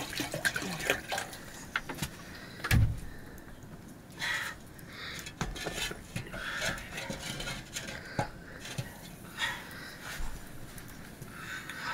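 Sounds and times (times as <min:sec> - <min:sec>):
water pouring into metal pot: 0:00.0 - 0:01.6.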